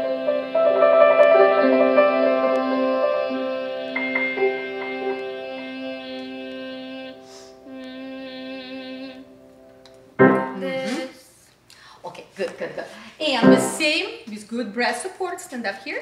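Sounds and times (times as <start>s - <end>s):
person holding a sung note: 4.6s - 9.3s
short vocal sounds: 5.5s - 9.4s.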